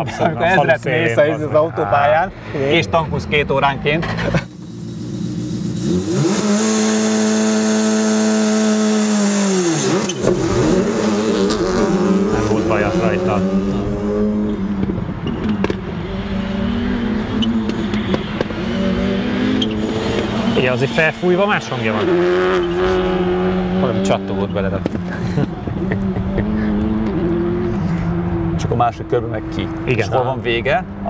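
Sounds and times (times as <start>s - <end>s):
rally car engine revving: 3.9s - 31.0s.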